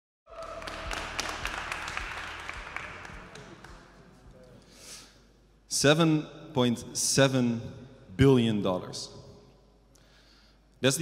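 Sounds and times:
audience applauding: 0:00.3 - 0:04.5.

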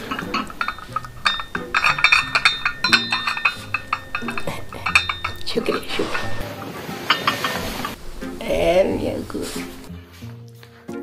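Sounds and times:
china crockery clinking: 0:00.0 - 0:08.0.

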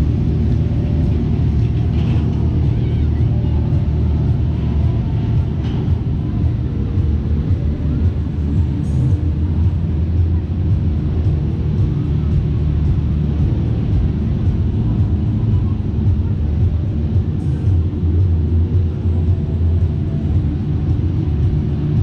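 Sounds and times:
ride machinery low rumble: 0:00.0 - 0:22.0.

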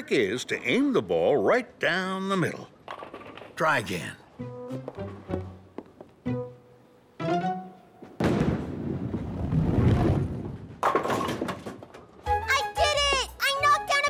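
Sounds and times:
music cue with sliding notes: 0:06.2 - 0:08.0
bowling pins clattering: 0:10.4 - 0:12.2.

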